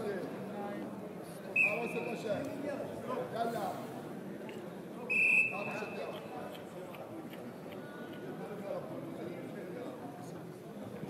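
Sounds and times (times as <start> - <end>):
murmur of voices: 0.0 - 11.0
referee's whistle blast: 1.6 - 2.1, 5.1 - 6.0.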